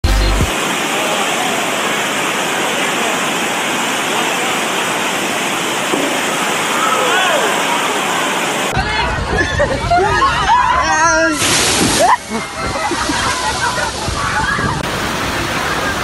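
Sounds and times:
rushing water: 0.0 - 16.0.

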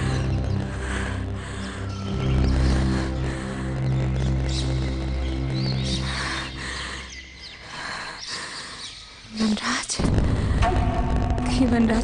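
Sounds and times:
low sustained drone: 0.0 - 7.6
birds chirping: 0.0 - 9.9.

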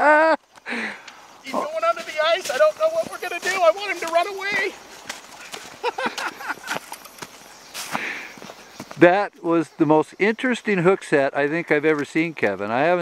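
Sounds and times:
man's voice: 1.4 - 4.8
footsteps running on snow and gravel: 1.5 - 9.0.

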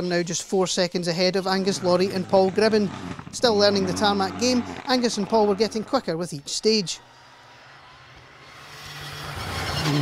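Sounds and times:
rally car engine droning: 1.4 - 10.0.

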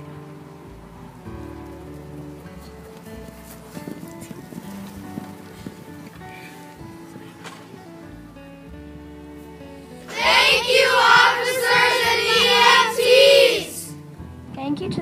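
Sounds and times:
background music sustained notes: 0.0 - 14.9.

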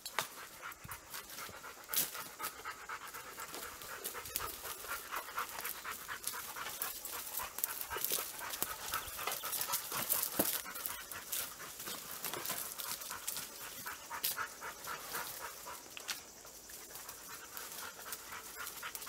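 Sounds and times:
dogs panting: 0.0 - 19.0.

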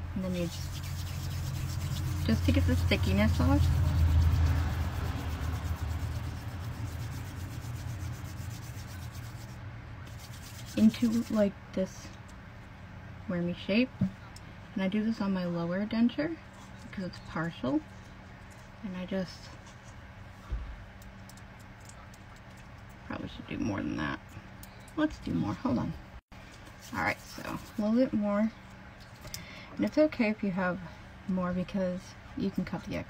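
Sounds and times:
low steady hum: 0.0 - 33.0
palms rubbing: 0.2 - 11.4.

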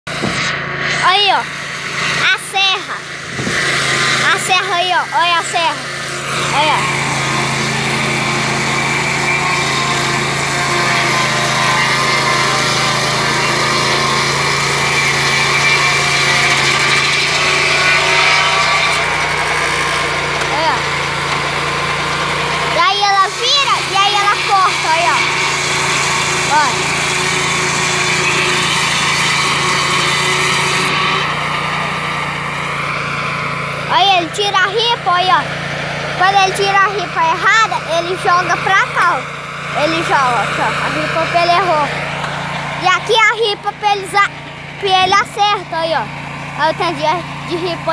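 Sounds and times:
sawmill engine running: 0.1 - 47.9
person's voice: 4.2 - 5.8, 6.5 - 6.9, 20.5 - 20.9, 22.8 - 25.3, 26.5 - 26.8, 33.9 - 35.4, 36.2 - 39.2, 39.8 - 41.9, 42.8 - 47.9
high hiss of saw: 14.6 - 19.7.

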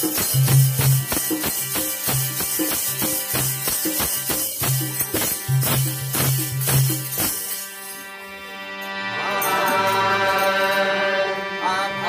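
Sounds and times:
harmonium chords: 0.0 - 12.0
person singing: 9.1 - 12.0.

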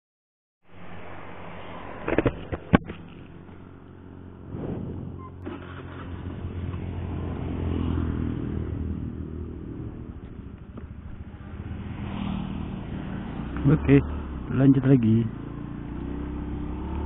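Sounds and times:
scooter engine accelerating: 5.2 - 14.5, 15.3 - 17.0.

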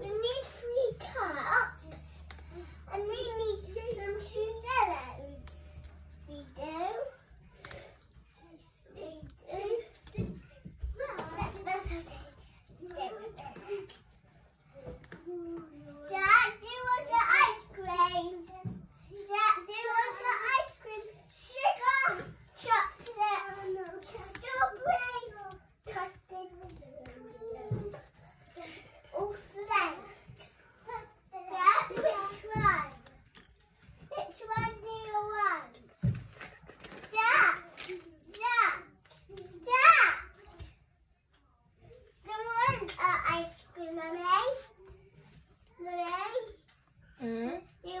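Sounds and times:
child talking: 0.0 - 14.0, 14.7 - 33.2, 34.0 - 35.9, 37.1 - 40.7, 42.2 - 45.0, 45.7 - 46.6, 47.8 - 48.0.

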